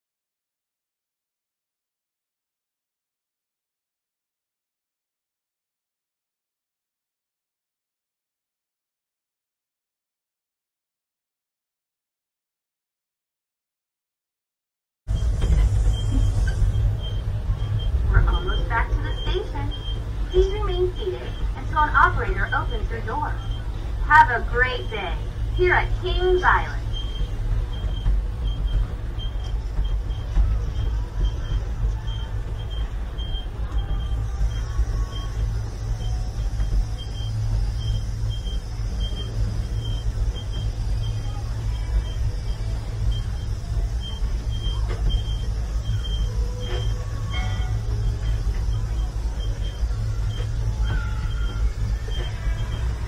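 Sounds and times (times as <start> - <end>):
faint high beeps: 15.1 - 53.0
ride car rumbling: 15.1 - 53.0.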